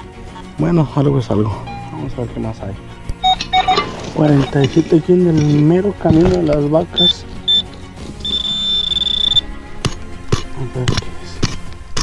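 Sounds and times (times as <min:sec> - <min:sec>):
pinpointer high-pitched tone: 0:08.2 - 0:09.4.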